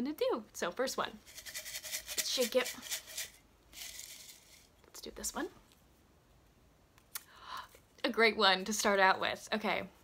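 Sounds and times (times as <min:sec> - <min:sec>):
paper slips rattling in mug: 0:01.2 - 0:04.7.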